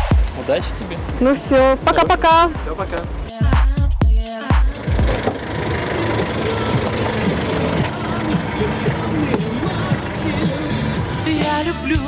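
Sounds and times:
street traffic noise: 0.0s - 12.0s
vehicle engine idling: 4.7s - 12.0s.

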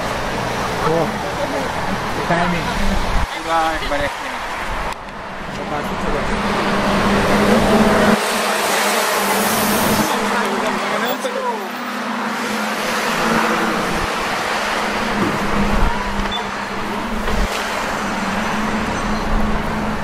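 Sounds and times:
people's voices: 0.0s - 18.6s
street traffic: 0.0s - 20.0s.

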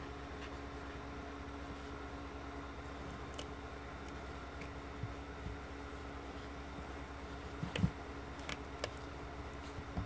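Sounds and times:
low electrical hum and hiss: 0.0s - 10.0s.

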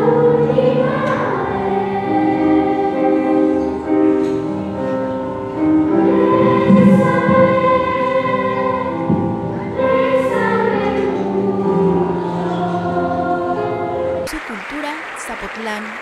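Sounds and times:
children's choir singing: 0.0s - 14.2s
piano accompaniment: 0.0s - 15.4s.

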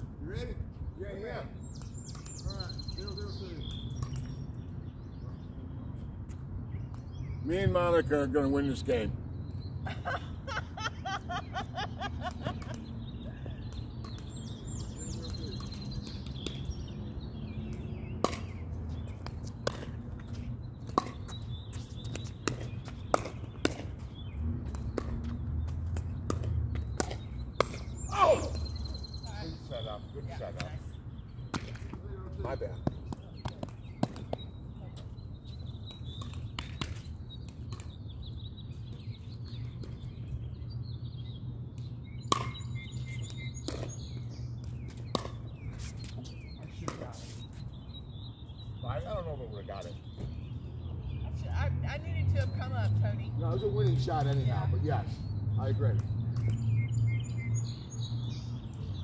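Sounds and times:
birds chirping: 0.0s - 59.0s.

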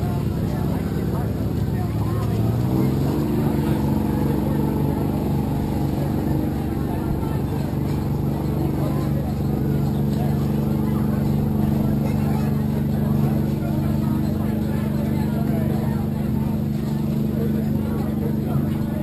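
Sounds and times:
engine running: 0.0s - 19.0s.

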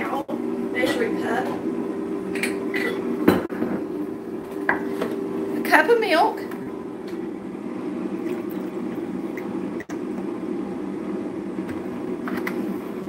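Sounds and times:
low background hum: 0.0s - 13.0s
milk pouring into cup: 8.2s - 9.5s.

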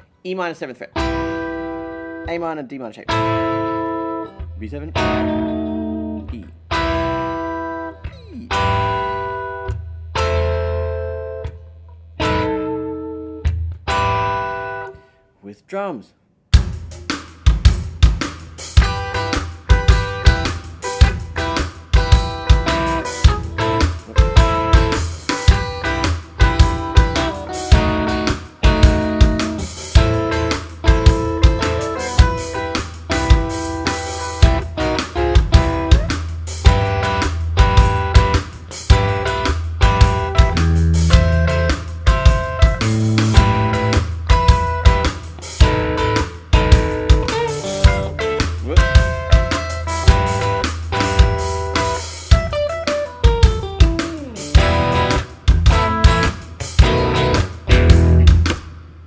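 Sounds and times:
electric guitar strumming: 1.0s - 2.4s, 3.1s - 15.0s, 18.6s - 58.8s
drum beat with kick and hi-hat: 16.5s - 58.8s.

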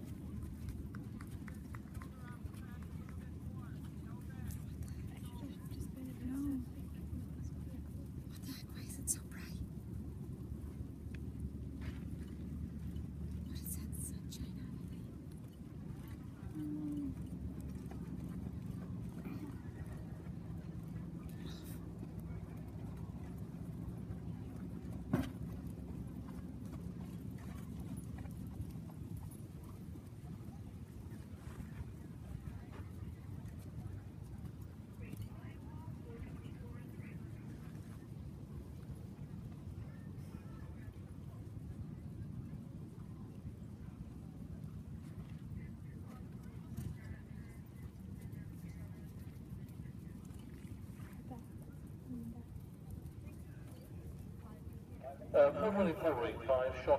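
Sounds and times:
steady low rumble: 0.0s - 52.6s, 54.2s - 56.9s
faint indistinct voices: 0.0s - 56.9s.

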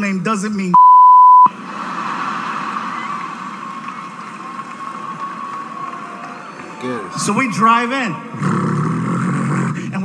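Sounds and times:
audience laughing: 1.5s - 5.2s
audience applauding: 1.5s - 8.4s.

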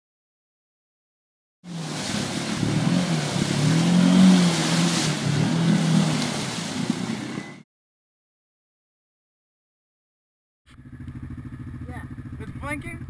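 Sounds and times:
quad engine revving: 1.7s - 7.4s, 10.7s - 13.0s
mud splattering: 1.7s - 7.5s.

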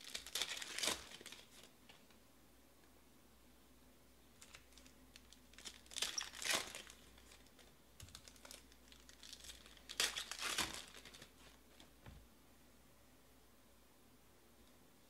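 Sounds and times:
foil wrapper crinkling and tearing: 0.0s - 1.7s, 4.4s - 11.5s.

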